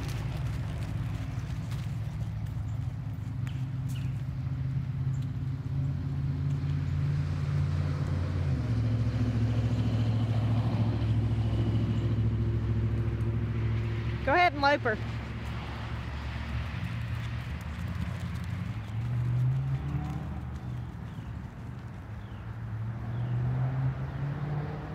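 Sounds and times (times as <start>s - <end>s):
vehicle engine running: 0.0s - 24.3s.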